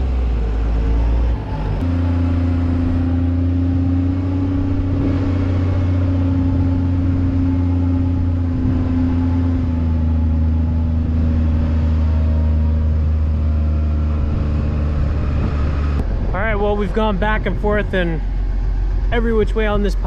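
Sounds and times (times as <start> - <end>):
diesel loader engine running: 0.0 - 20.0.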